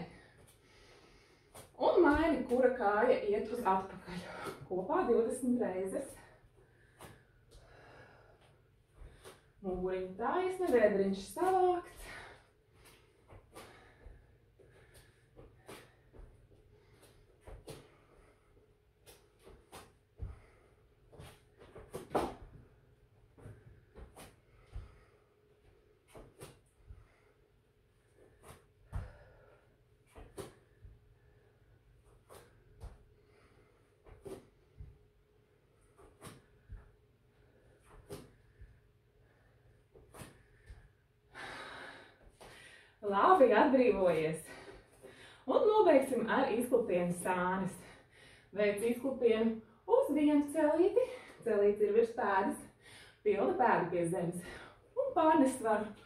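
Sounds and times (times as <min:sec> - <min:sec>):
faint movement and breathing: 0:00.0 - 0:56.0
bare foot thudding on mat: 0:01.6 - 0:03.0, 0:19.0 - 0:22.7.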